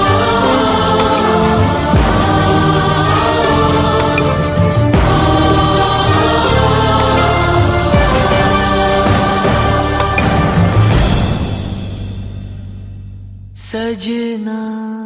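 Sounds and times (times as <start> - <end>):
wordless vocals over orchestra: 0.0 - 12.2.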